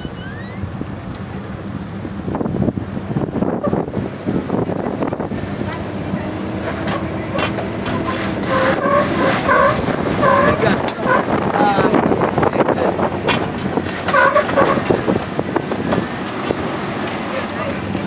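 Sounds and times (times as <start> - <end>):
engine running at low crawl: 0.0 - 18.0.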